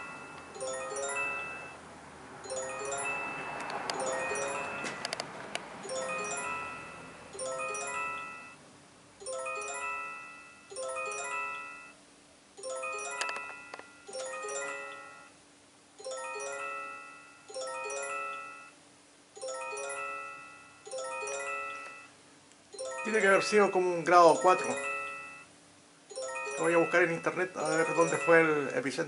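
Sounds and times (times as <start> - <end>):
bell-like chime melody: 0.0 - 1.8, 2.4 - 5.1, 5.8 - 8.6, 9.2 - 12.0, 12.6 - 15.4, 16.0 - 18.8, 19.4 - 25.5, 26.1 - 28.8.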